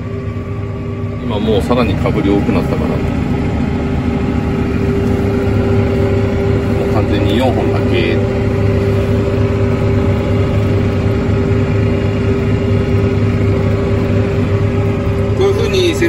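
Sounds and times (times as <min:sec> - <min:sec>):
tractor engine drone: 0:00.0 - 0:16.0.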